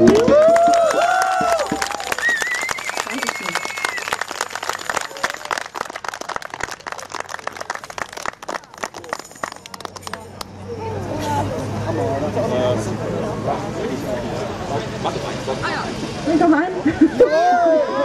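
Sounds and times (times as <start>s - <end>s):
people cheering and whooping: 0.0s - 5.8s, 16.9s - 18.0s
audience clapping: 0.0s - 10.6s.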